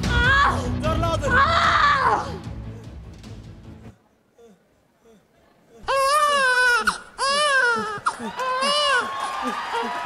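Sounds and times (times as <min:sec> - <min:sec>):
baby crying: 0:05.8 - 0:09.9.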